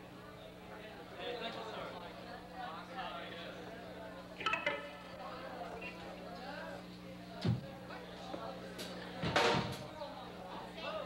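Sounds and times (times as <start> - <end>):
indistinct background talk: 0.0 - 11.0
low hum from stage gear: 3.5 - 11.0.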